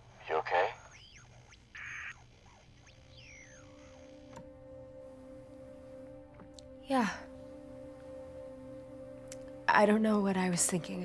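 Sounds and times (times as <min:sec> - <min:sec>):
burst of static: 0:00.0 - 0:03.9
radio interference whistling tones: 0:00.0 - 0:04.3
low drone of background music: 0:03.2 - 0:11.0.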